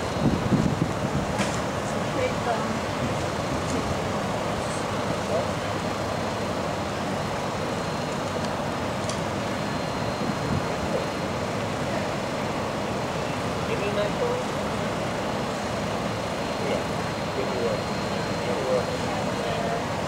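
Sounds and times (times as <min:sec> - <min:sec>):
street rumble and hiss: 0:00.0 - 0:20.0.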